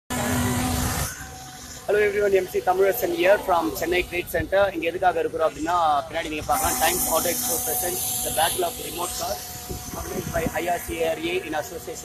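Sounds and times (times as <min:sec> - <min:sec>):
motor vehicle passing: 0:00.1 - 0:12.0
quiet outdoor background: 0:00.1 - 0:12.0.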